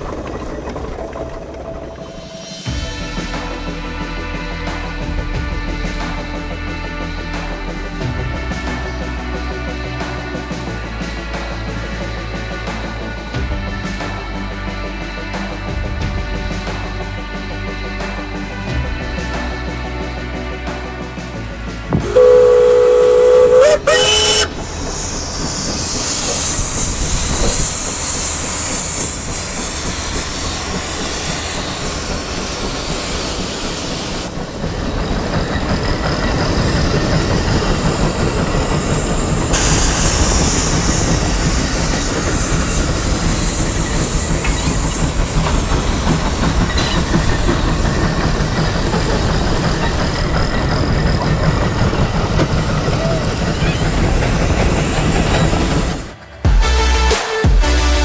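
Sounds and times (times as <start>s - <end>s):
steam engine chuffing: 0.0s - 57.8s
steam whistle: 21.9s - 27.6s
hissing steam: 21.9s - 56.4s.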